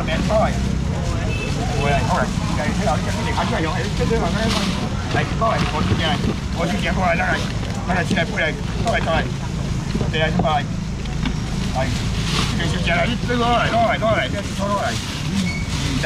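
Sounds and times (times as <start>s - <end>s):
continuous low rumble: 0.0s - 16.0s
people talking and calling: 0.0s - 16.0s.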